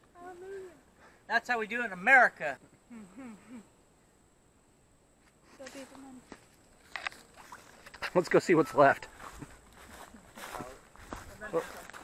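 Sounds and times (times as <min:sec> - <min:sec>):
faint voice: 0:02.9 - 0:03.7
footsteps through grass: 0:05.6 - 0:12.0.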